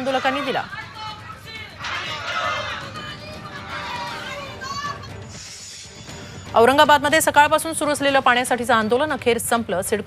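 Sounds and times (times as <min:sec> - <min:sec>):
protesters shouting together: 0:00.0 - 0:05.0.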